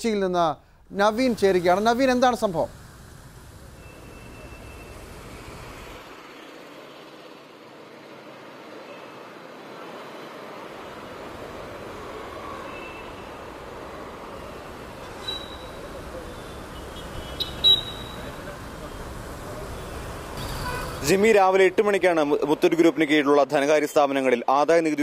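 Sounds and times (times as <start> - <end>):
street traffic noise: 0.0 - 25.0.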